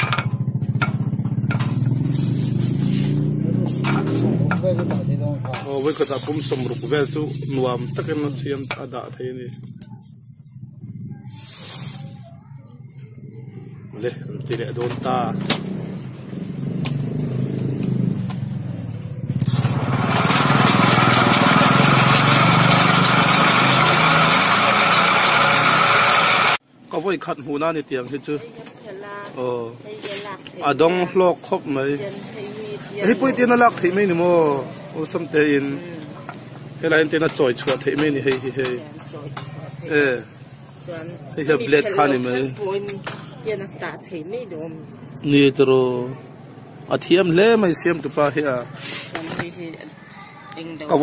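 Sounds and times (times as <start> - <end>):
small engine running: 0.0 - 4.6, 19.3 - 26.6
nuts clattering in spinning drum: 19.5 - 26.6.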